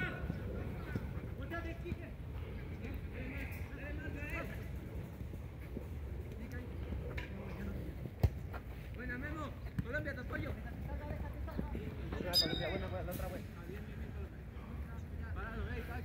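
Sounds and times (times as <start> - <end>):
ball kick thud: 8.2 - 8.5.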